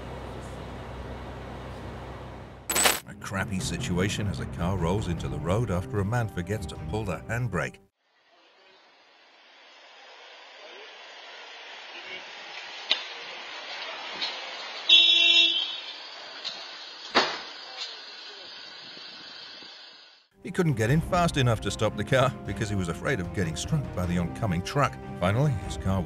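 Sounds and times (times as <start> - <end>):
street traffic: 0.0 - 5.4, 8.9 - 18.7
vehicle horn honking: 14.9 - 16.0.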